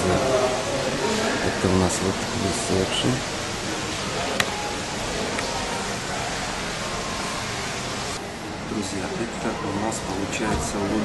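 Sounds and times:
rushing hiss of background noise: 0.0s - 11.0s.

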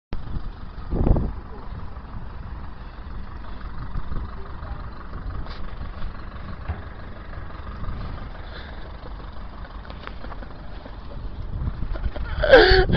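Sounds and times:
low rumble of road traffic: 0.1s - 12.9s
faint voices: 2.7s - 5.8s
dull thump: 6.6s - 7.0s.

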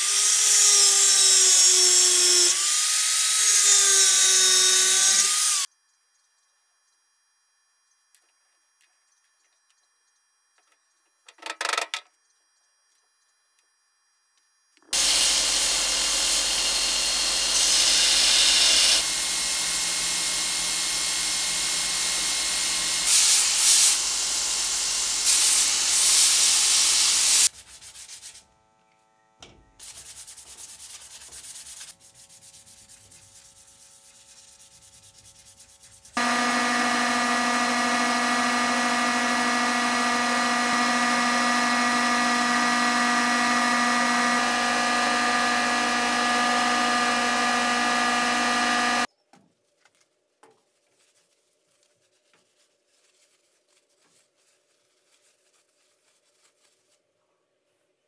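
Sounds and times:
belt grinder grinding wood: 0.0s - 5.7s, 14.9s - 27.5s, 36.2s - 49.1s
hand sanding: 27.4s - 28.4s, 29.8s - 49.1s, 50.9s - 57.0s
loud steady humming noise: 36.2s - 49.1s.

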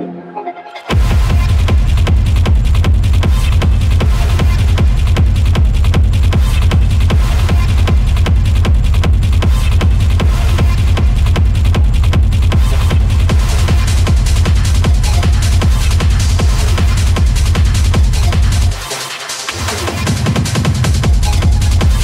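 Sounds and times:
techno kick drum and bass: 0.9s - 22.0s.

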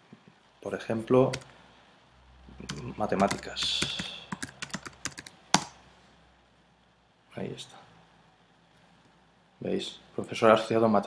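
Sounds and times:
computer keyboard typing: 2.6s - 5.8s.

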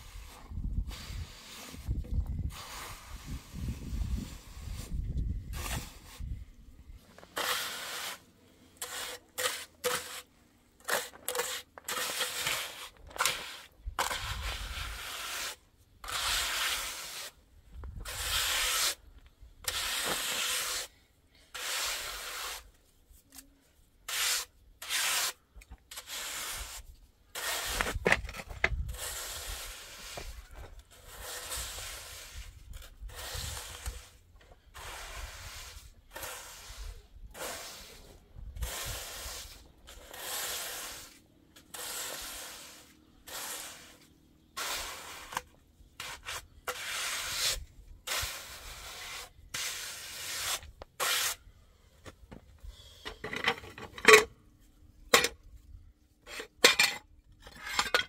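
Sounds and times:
trowel scraping wet cement: 0.0s - 6.4s, 7.0s - 22.7s, 24.0s - 51.5s.

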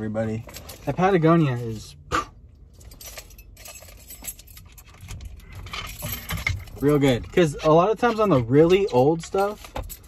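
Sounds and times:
car keys jingling: 0.0s - 10.0s.

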